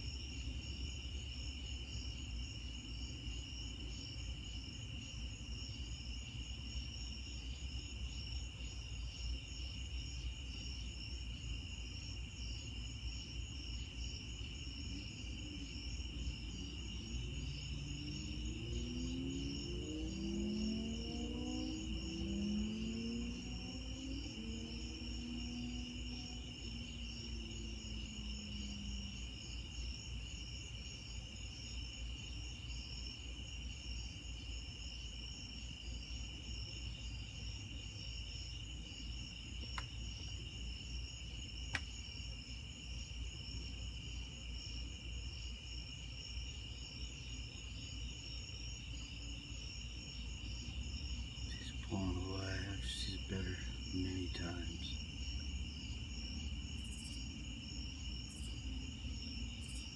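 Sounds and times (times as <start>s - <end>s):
crickets trilling: 0.0s - 59.9s
high pulsing insect trill: 0.0s - 59.9s.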